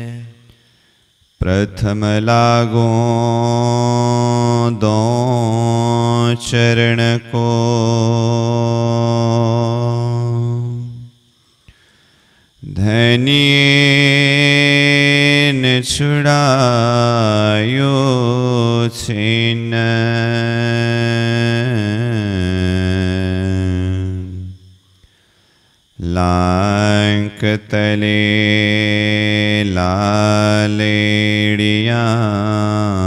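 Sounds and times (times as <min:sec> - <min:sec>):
man chanting: 0:00.0 - 0:00.5, 0:01.4 - 0:11.2, 0:12.6 - 0:24.6, 0:26.0 - 0:33.0.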